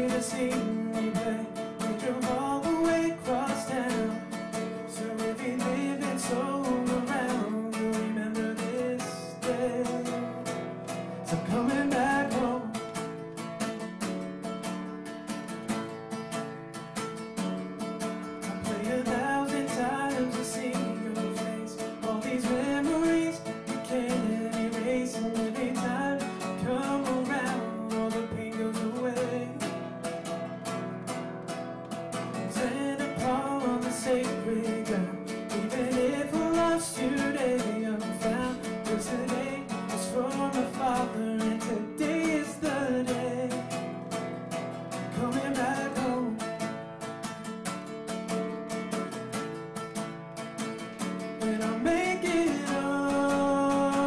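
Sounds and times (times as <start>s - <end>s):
man singing: 0.0s - 13.4s, 18.4s - 30.4s, 32.1s - 46.8s, 51.0s - 54.0s
acoustic guitar strumming: 0.0s - 54.0s.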